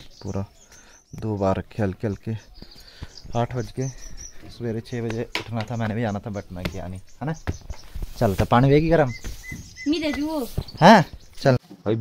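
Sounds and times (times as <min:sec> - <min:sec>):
bird calling: 0:00.0 - 0:11.6.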